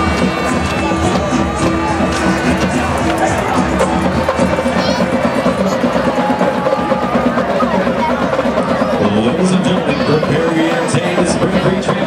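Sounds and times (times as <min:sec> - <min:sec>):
background music: 0:00.0 - 0:12.0
crowd talking: 0:00.0 - 0:12.0.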